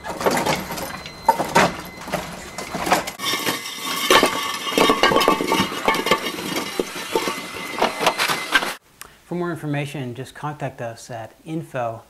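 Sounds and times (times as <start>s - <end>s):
robot wheels clinking and knocking: 0.0s - 8.8s.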